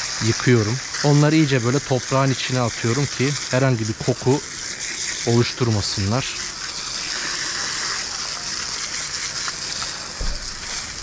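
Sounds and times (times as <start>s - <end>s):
hose water jet on gravel: 0.0s - 11.0s.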